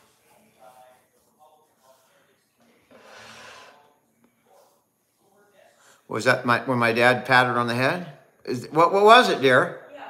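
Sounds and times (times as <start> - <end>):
person's noisy breath: 2.9 - 3.8.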